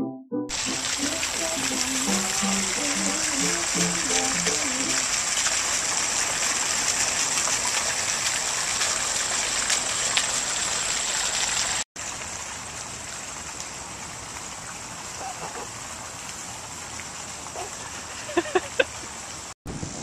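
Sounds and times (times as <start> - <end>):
soft melody: 0.0 - 5.1
fountain water splashing: 0.5 - 19.5.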